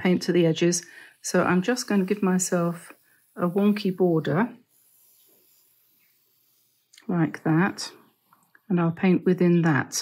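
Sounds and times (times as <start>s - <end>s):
pencil scratching on paper: 0.0s - 8.6s.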